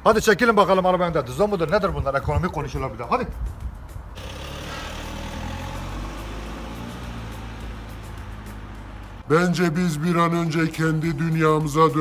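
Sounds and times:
car engine and tyres on asphalt: 0.0s - 12.0s.

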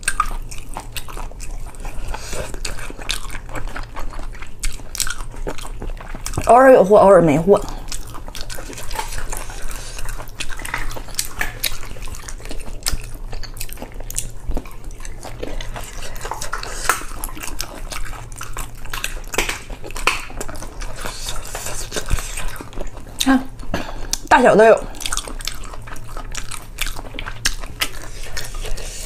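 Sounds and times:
chewing and wet mouth sounds: 0.0s - 29.0s
steady low hum: 0.0s - 29.0s.

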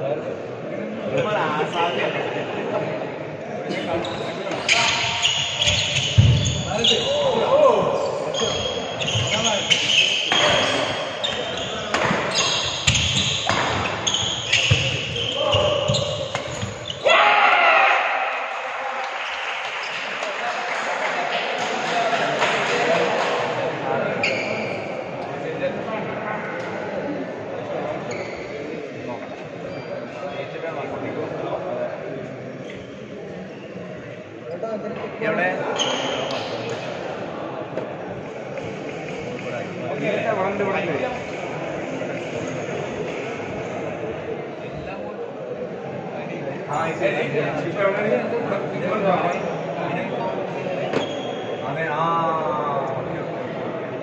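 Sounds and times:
murmur of voices: 0.0s - 54.0s.

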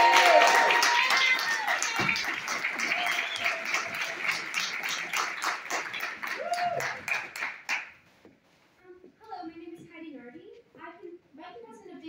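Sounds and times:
audience applauding: 0.0s - 8.0s.

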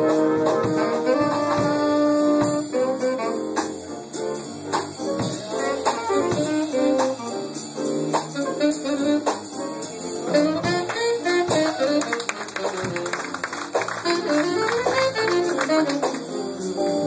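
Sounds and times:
drums: 0.0s - 17.0s
guitar: 0.0s - 17.0s
saxophones playing melody: 0.0s - 17.0s.

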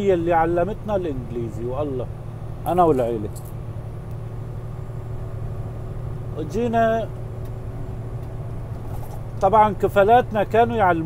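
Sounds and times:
engine and road noise in cabin: 0.0s - 11.0s.

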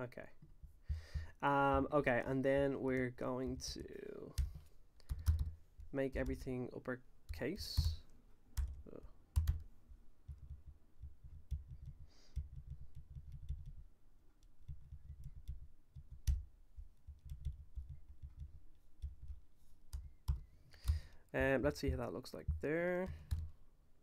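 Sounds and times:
computer keyboard typing: 3.5s - 6.4s, 7.3s - 23.5s.

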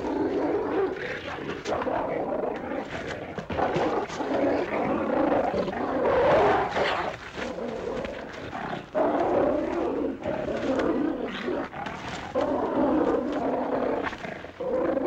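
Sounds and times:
large dog snarling and growling: 0.0s - 15.0s.

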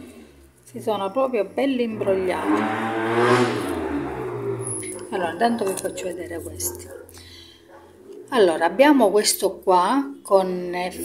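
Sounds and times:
motor vehicle passing: 0.0s - 9.0s.

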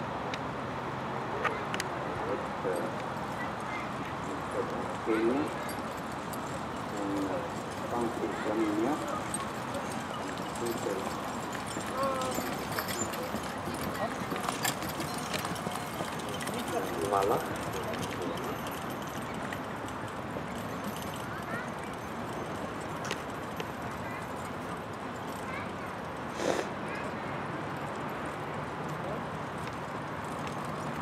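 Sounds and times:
outdoor background noise: 0.0s - 31.0s
carriage and harness rattling: 2.7s - 26.2s
horse hoofbeats on grass: 4.6s - 24.2s.

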